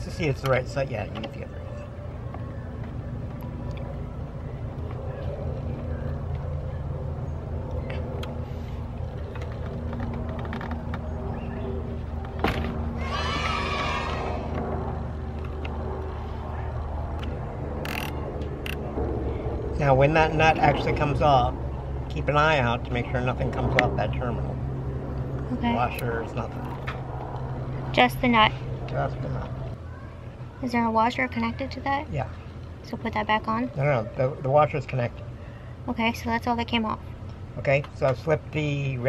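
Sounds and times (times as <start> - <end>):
steady low hum: 0.0 - 39.0
high wavering cry: 12.9 - 14.6.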